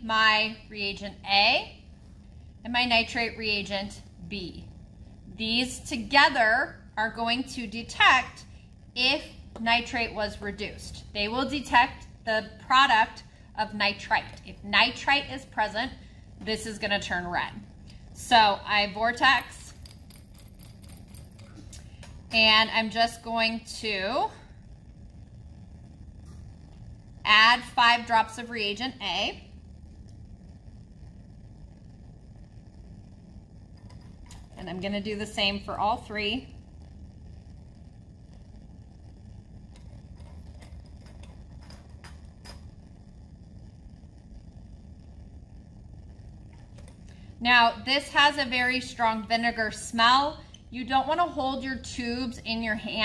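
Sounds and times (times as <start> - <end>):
low room hum: 0.0 - 53.0.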